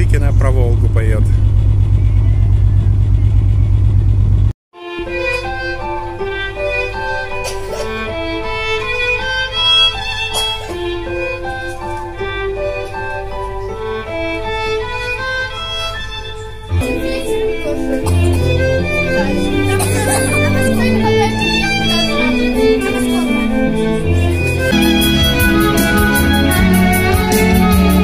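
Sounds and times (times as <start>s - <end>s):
loud low rumble: 0.0s - 4.5s
solo violin melody: 4.7s - 28.0s
recorded accompaniment with bass line: 23.5s - 28.0s.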